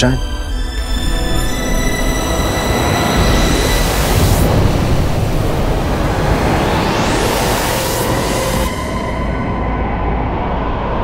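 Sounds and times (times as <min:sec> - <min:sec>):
sustained music tones: 0:00.0 - 0:11.0
loud rushing noise: 0:02.2 - 0:11.0.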